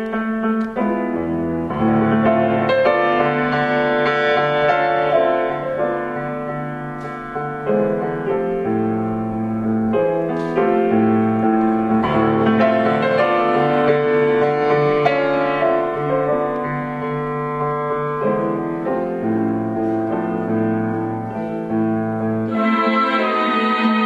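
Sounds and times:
slow solo piano chords: 0.0s - 22.6s.

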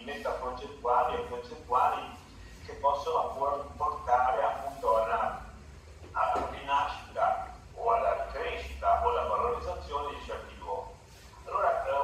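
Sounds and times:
man talking over loudspeakers: 0.0s - 5.5s, 6.2s - 12.0s.

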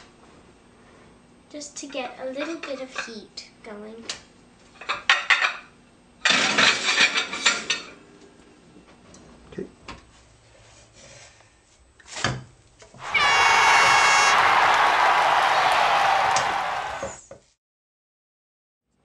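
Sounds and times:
plates and oven rack clattering: 6.3s - 8.0s
crowd cheering and applause: 13.0s - 17.2s.

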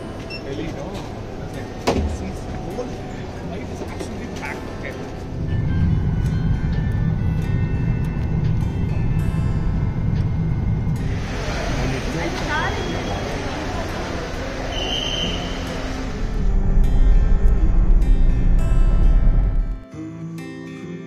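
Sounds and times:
airport terminal ambience: 0.0s - 17.9s.

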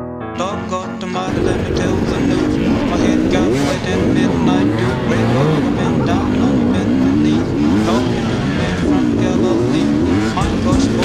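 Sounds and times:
dirt bike engine revving: 1.3s - 11.0s.

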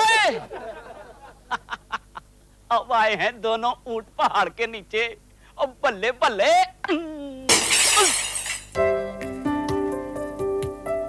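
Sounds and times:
man exclaiming: 0.0s - 0.5s
light keyboard music: 8.8s - 11.0s.

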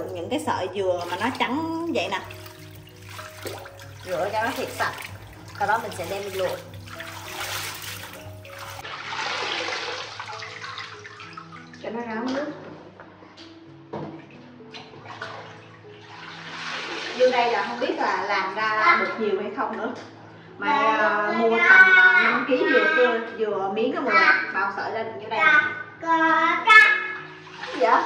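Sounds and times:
water sloshing in a metal sink: 0.0s - 12.9s, 13.9s - 19.9s, 27.2s - 28.0s
soft background music: 0.0s - 28.0s.

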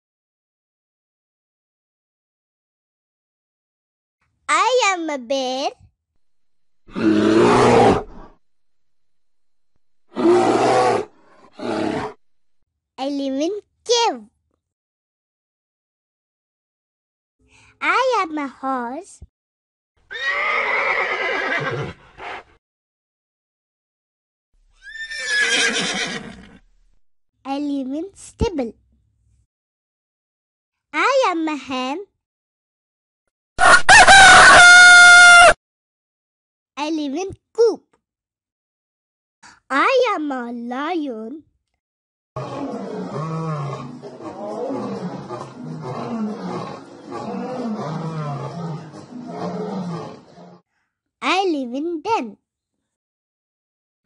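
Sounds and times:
horse whinnying: 6.9s - 8.4s, 10.0s - 12.3s, 20.1s - 22.5s, 24.8s - 27.0s, 42.4s - 50.6s
lion roaring: 6.9s - 8.4s, 10.0s - 12.2s, 42.4s - 50.6s.

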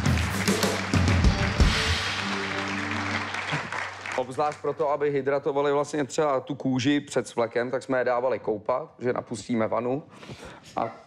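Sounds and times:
band playing musical sting: 0.0s - 4.0s
audience applause: 0.0s - 4.8s.

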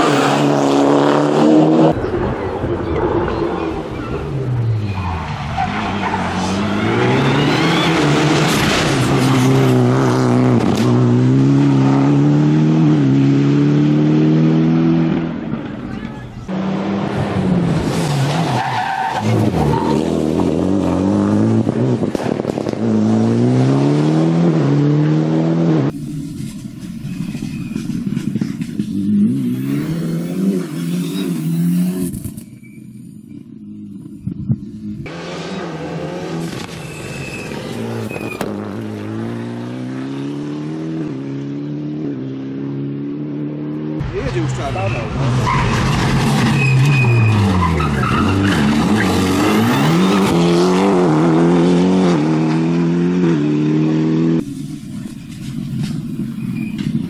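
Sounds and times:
rally car engine revving: 0.0s - 32.5s, 33.3s - 57.0s.

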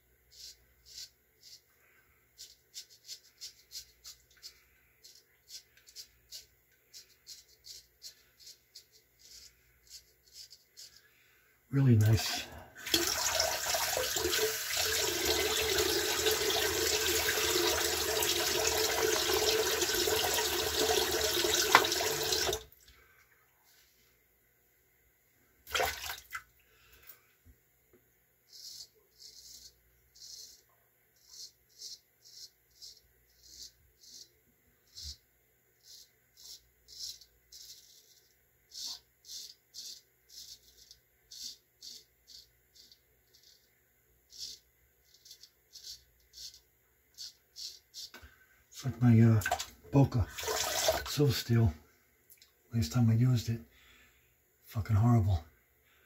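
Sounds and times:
tap running into basin: 12.8s - 22.6s, 50.3s - 51.1s.

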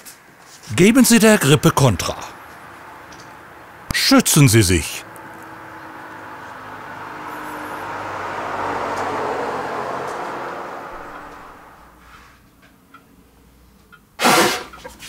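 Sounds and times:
loud sneeze: 14.2s - 14.7s.

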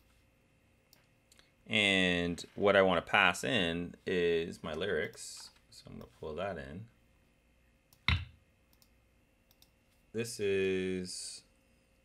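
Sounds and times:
computer mouse clicks: 7.9s - 9.8s.

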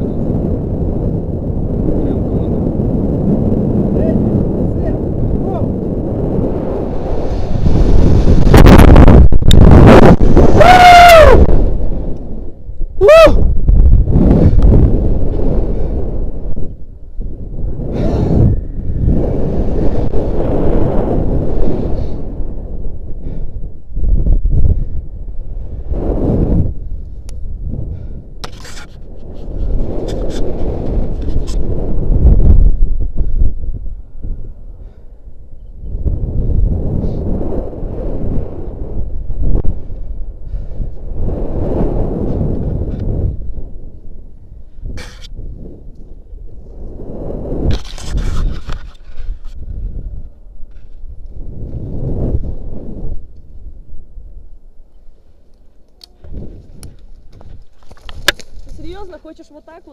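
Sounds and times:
wind rushing over microphone: 0.0s - 59.9s.

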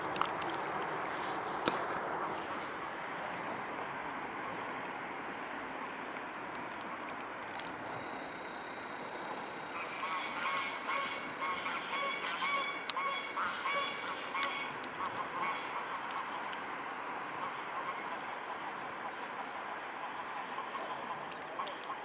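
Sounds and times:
waterfowl calling: 7.8s - 16.4s, 20.6s - 22.0s.

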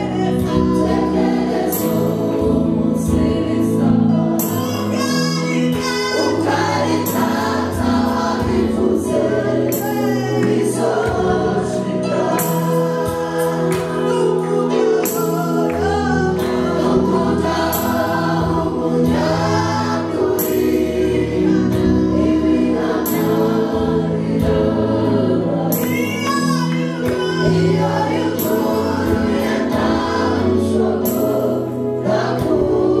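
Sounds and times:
choir singing: 0.0s - 33.0s
musical backing: 0.0s - 33.0s
woman singing into microphone: 3.4s - 7.8s, 25.8s - 30.6s.

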